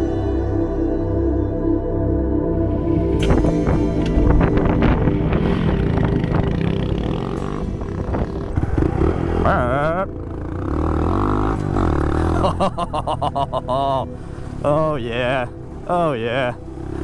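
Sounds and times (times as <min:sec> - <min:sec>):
background music: 0:00.0 - 0:17.0
motorcycle engine running: 0:03.1 - 0:14.7, 0:15.5 - 0:17.0.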